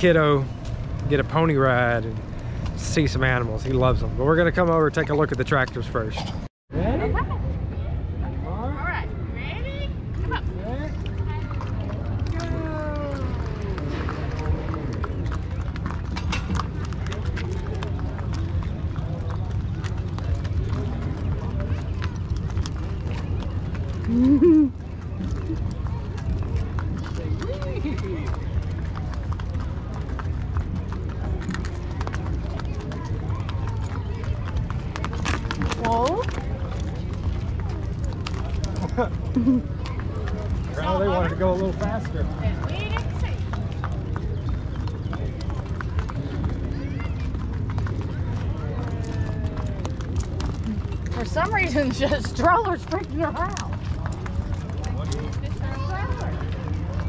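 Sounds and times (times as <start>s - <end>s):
hooves clip-clopping on dirt: 10.9s - 57.0s.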